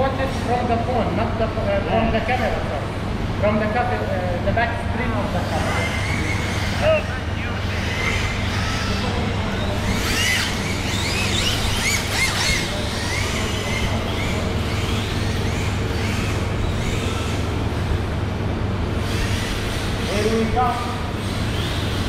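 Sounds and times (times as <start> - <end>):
steady low hum: 0.0 - 22.0
rc car motors whining: 5.1 - 18.1, 18.9 - 22.0.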